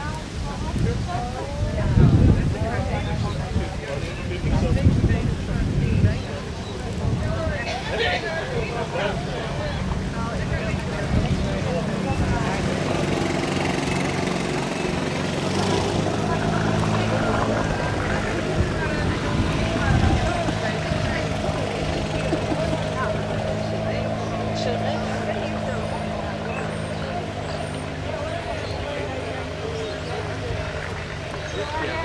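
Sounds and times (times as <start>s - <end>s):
indistinct voices: 0.0s - 32.0s.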